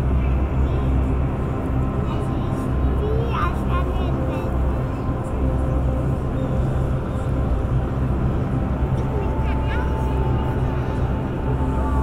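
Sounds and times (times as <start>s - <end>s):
steady low rumble: 0.0s - 12.0s.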